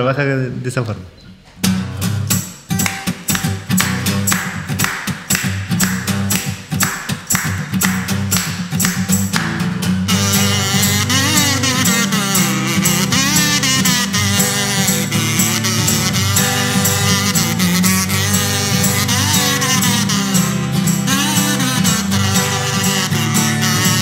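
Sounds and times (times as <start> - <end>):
acoustic guitar strumming: 1.6 - 24.0
warbling plastic whistle: 10.1 - 24.0.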